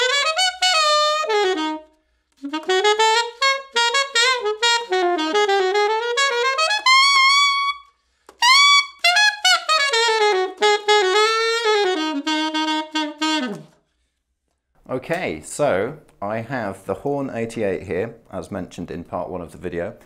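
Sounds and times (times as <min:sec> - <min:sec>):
solo alto saxophone: 0:00.0 - 0:13.8.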